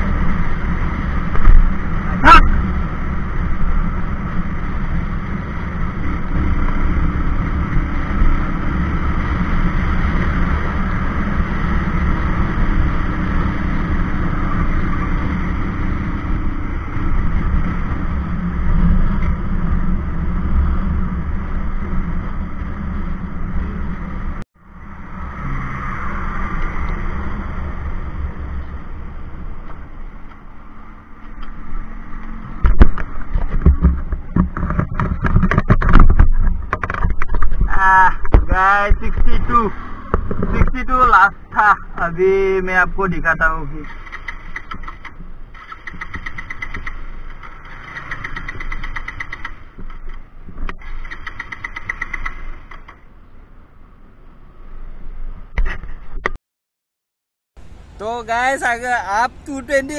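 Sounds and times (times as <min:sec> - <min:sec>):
motorcycle engine running: 0:00.0 - 0:25.2, 0:43.8 - 0:53.2
wind rushing over microphone: 0:31.6 - 0:52.7.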